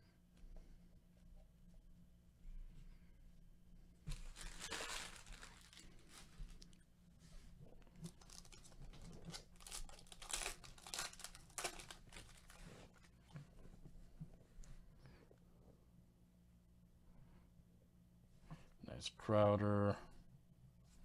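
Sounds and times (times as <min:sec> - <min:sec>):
foil wrapper tearing and crinkling: 0:04.1 - 0:06.6, 0:08.0 - 0:12.8.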